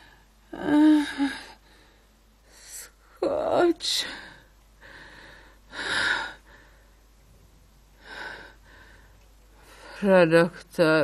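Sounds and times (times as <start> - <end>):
woman gasping breaths: 4.1 - 7.0, 8.0 - 10.0.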